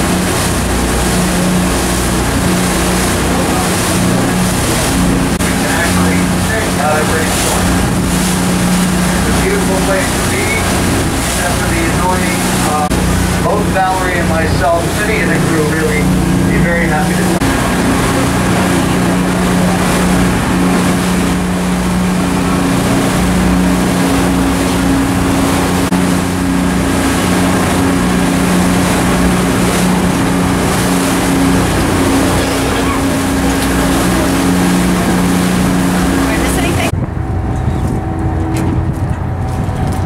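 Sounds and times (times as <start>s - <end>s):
boat engines droning: 0.0s - 40.0s
water rushing from wake: 0.0s - 40.0s.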